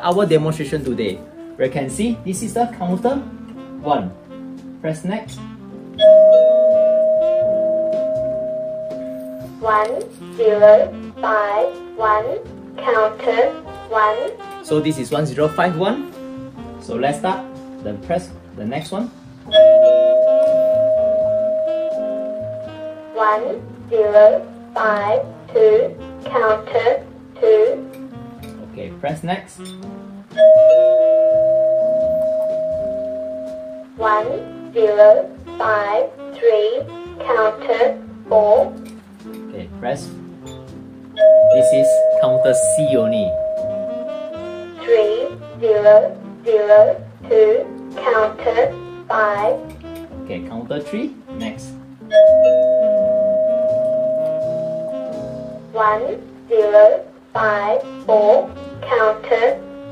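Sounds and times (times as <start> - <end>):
two-note bell-like chime: 6.0 - 9.4, 19.6 - 22.7, 30.4 - 33.8, 41.2 - 44.1, 52.1 - 55.5.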